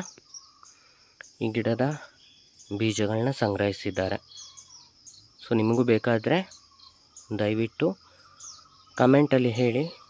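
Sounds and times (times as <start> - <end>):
high-pitched insect chirring: 0.0 - 10.0
light bird chirps: 0.0 - 10.0.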